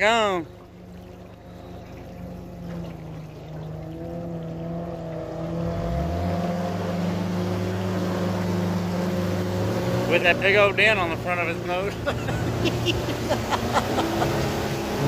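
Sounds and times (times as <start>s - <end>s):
jet boat engine: 0.0s - 15.0s
low engine hum: 0.0s - 15.0s.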